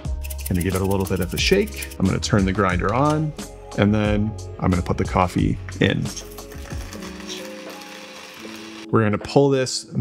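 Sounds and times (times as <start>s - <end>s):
soft background music: 0.0s - 10.0s
coffee grinder grinding: 6.3s - 8.9s.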